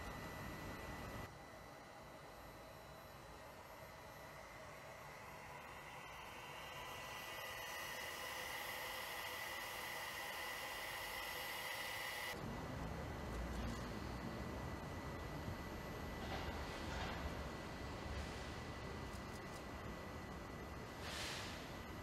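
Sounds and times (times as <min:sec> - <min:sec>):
air intake hiss with high whine: 0:20.9 - 0:21.8.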